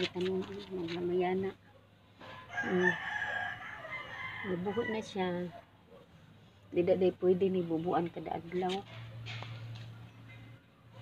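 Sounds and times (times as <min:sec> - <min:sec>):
rooster crowing: 0:02.5 - 0:05.3.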